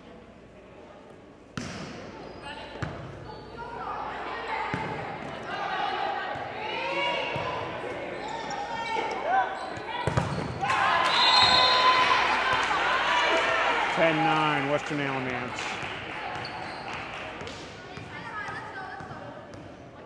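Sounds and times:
players calling: 4.4s - 17.6s
spectators shouting: 10.6s - 14.8s
crowd cheering: 10.6s - 17.4s.

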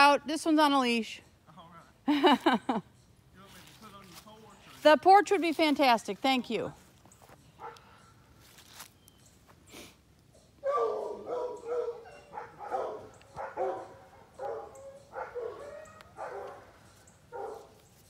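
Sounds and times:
dogs barking: 7.6s - 8.2s, 10.4s - 17.8s.

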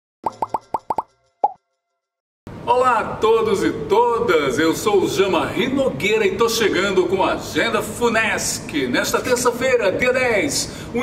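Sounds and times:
cartoon pops rising in pitch: 0.2s - 1.6s.

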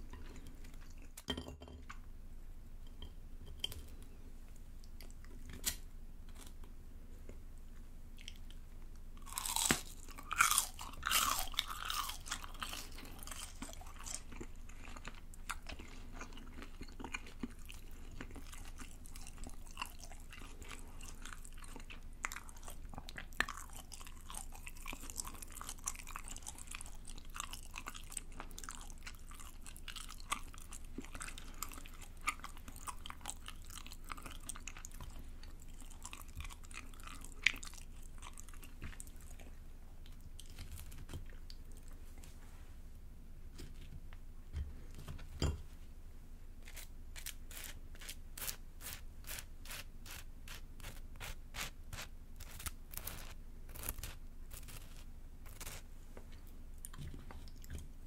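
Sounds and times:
chewing with clicks: 8.2s - 42.0s, 55.6s - 57.9s
crunchy bite into fried food: 9.2s - 12.6s.

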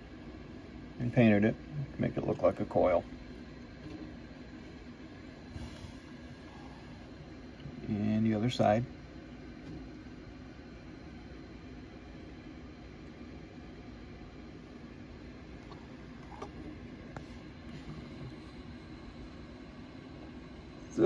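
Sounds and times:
room noise hum: 0.0s - 21.0s.

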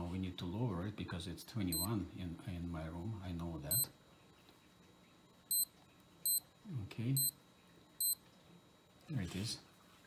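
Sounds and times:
digital watch beeps: 1.7s - 1.9s, 3.7s - 3.9s, 5.5s - 6.4s, 7.1s - 7.4s, 8.0s - 8.2s.

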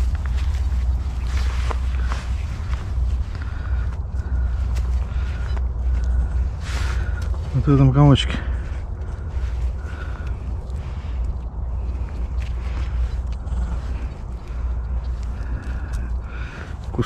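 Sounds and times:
soil crumbling between hands: 0.0s - 17.0s
steady low rumble: 0.0s - 17.0s.

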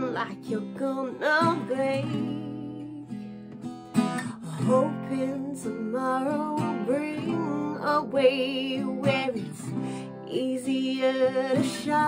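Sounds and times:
woman singing with vibrato: 0.0s - 3.2s, 4.0s - 12.0s
acoustic guitar strumming: 0.0s - 12.0s.

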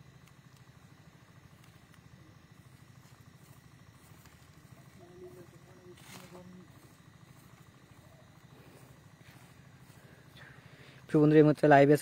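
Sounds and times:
faint ticks: 0.0s - 2.1s
faint fluttering low hum: 0.0s - 12.0s.

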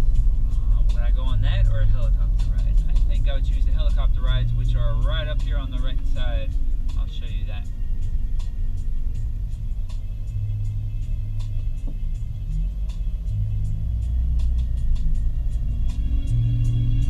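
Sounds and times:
car road and engine rumble: 0.0s - 17.0s
music with held bass notes: 0.0s - 17.0s.

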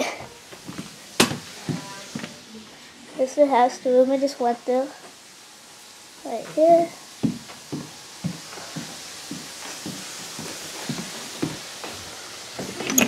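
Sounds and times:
footsteps on hardwood floor: 0.0s - 2.4s, 7.2s - 13.0s.

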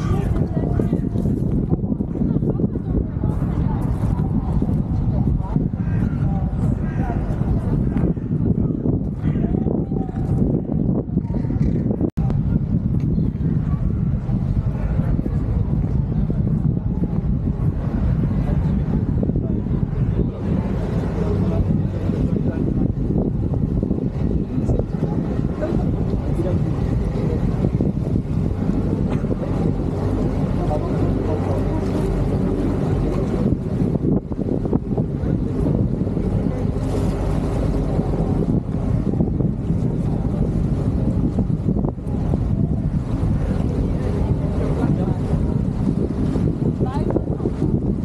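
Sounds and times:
choppy water against stone: 0.0s - 48.0s
people talking: 0.0s - 48.0s
wind buffeting microphone: 0.0s - 48.0s.

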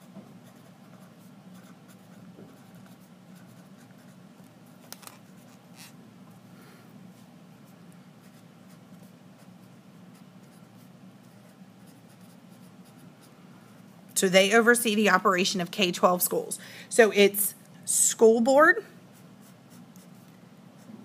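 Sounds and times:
low room hum: 0.0s - 21.0s.

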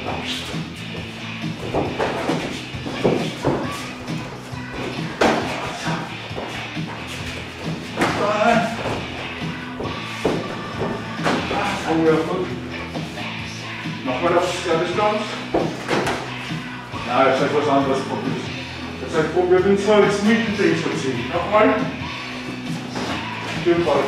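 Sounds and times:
footwork on mats: 0.0s - 13.4s, 15.3s - 16.8s, 22.4s - 24.0s
music playing: 0.0s - 24.0s.

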